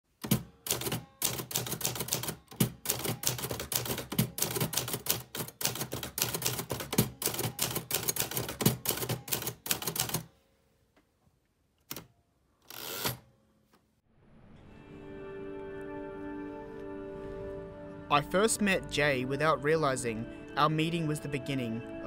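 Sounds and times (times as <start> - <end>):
manual typewriter key strikes: 0.2 - 10.2.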